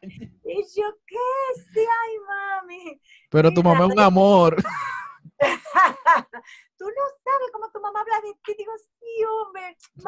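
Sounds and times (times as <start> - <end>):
woman speaking in sing-song tone: 0.1 - 4.1, 6.8 - 10.0.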